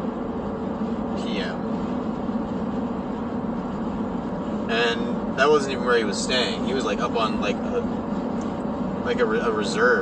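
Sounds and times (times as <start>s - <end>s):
car engine and road drone: 0.0s - 10.0s.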